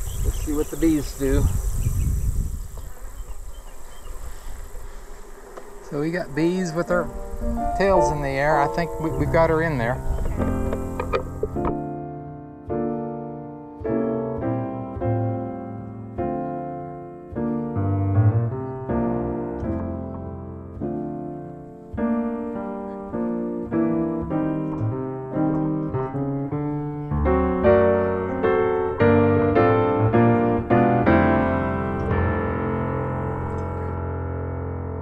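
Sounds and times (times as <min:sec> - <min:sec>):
piano music: 0:05.6 - 0:35.0.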